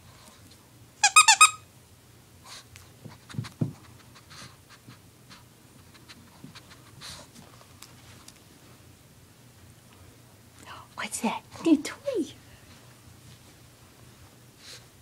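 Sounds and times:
dog toy squeaking: 0:01.0 - 0:01.6
small dog panting: 0:02.4 - 0:07.6, 0:14.6 - 0:15.0.

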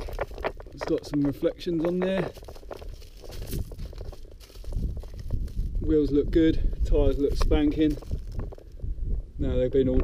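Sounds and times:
faint crunches: 0:00.0 - 0:09.0
microphone handling noise: 0:00.0 - 0:10.0
wind rumbling on microphone: 0:00.0 - 0:10.0.

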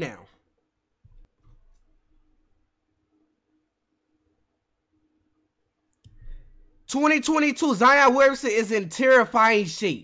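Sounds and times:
computer mouse clicks: 0:05.9 - 0:06.6
man's voice: 0:06.9 - 0:10.0.

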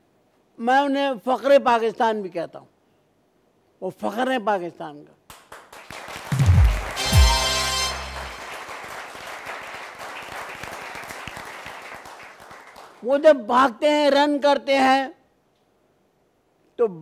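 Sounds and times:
studio audience applauding: 0:05.3 - 0:13.0.

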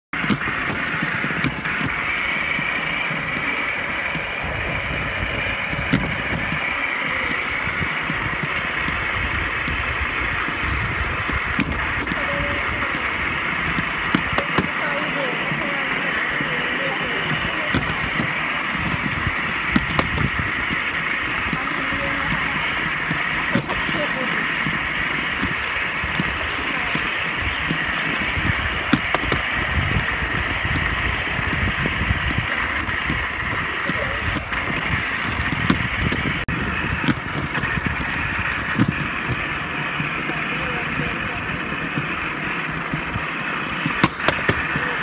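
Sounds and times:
trolley wheels rolling on rails: 0:00.0 - 0:45.0
sharp clicks of wheels: 0:00.1 - 0:45.0.

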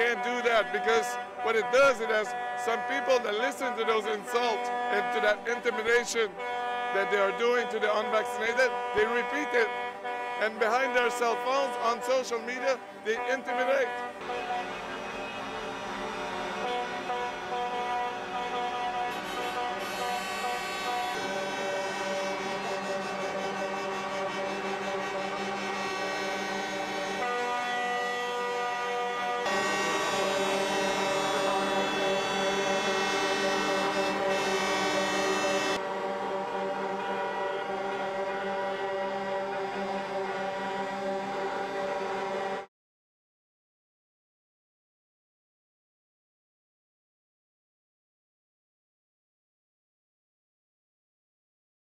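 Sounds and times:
truck air horns blaring: 0:00.0 - 0:42.7.

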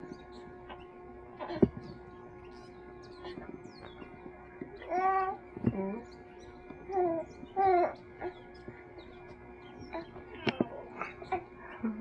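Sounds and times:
steady electrical hum: 0:00.0 - 0:12.0
baby cooing: 0:04.8 - 0:05.4, 0:06.9 - 0:08.4.

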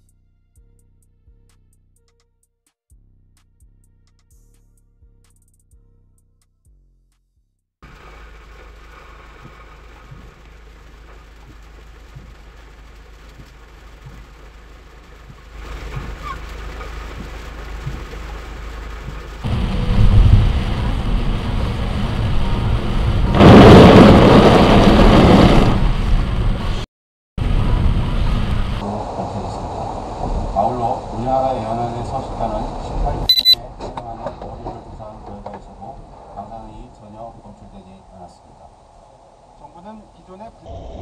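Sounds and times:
heavy rain on car: 0:07.8 - 0:26.8, 0:27.4 - 0:33.3
road noise inside car: 0:07.8 - 0:41.0.

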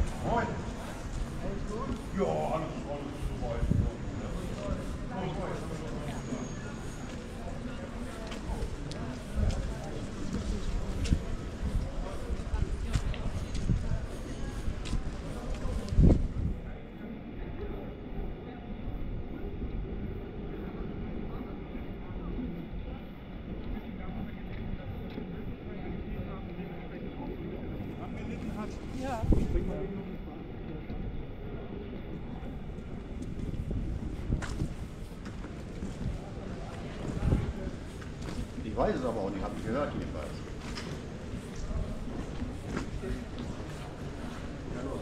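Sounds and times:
wind rumbling on microphone: 0:00.0 - 0:05.6, 0:08.4 - 0:16.9, 0:28.6 - 0:30.1, 0:30.7 - 0:38.8
passersby talking: 0:00.0 - 0:45.0.

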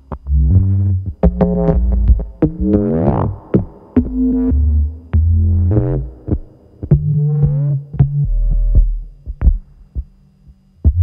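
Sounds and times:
loud low synthesizer tone: 0:00.0 - 0:10.0
faint low hum: 0:00.0 - 0:11.0
low synthesizer thumps: 0:00.1 - 0:10.2, 0:10.8 - 0:11.0.

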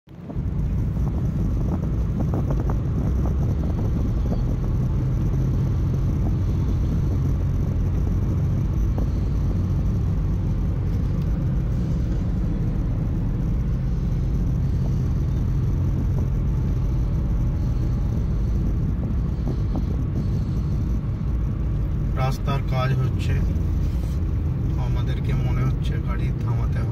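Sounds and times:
road and engine rumble in cabin: 0:00.0 - 0:26.9.

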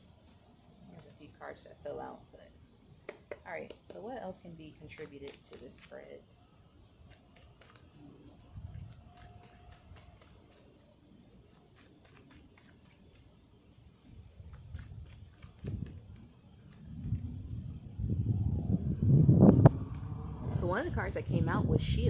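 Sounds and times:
passing vehicle engine: 0:17.2 - 0:21.9.

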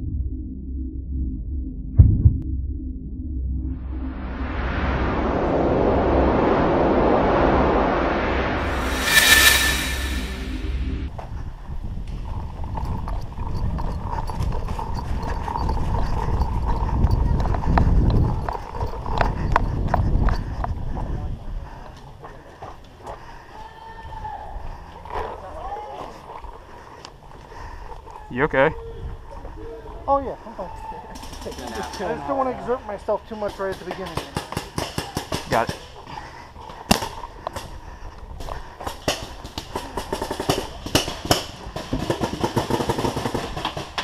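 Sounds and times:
low drone: 0:00.0 - 0:11.1
rushing whoosh: 0:04.2 - 0:11.1.

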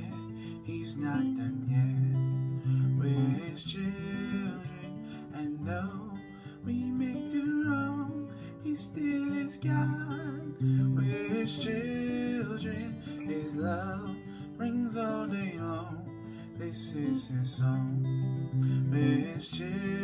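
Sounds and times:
acoustic guitar strumming: 0:00.0 - 0:20.0
man singing: 0:00.0 - 0:20.0.

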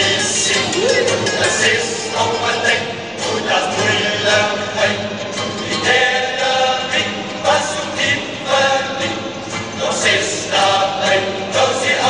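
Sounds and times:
men's choir singing comic song: 0:00.0 - 0:12.0.

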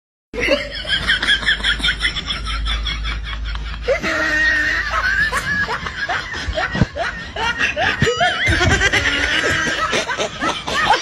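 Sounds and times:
high-pitched laughter: 0:00.4 - 0:11.0.

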